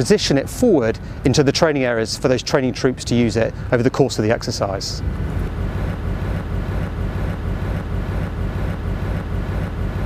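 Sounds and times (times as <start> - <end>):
engine rumble with hum: 0.0 - 10.0.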